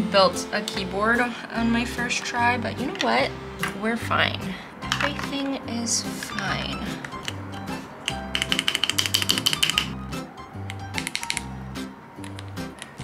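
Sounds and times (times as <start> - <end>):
background music with steady beat: 0.0 - 13.0
fast plastic clicks: 8.4 - 10.0.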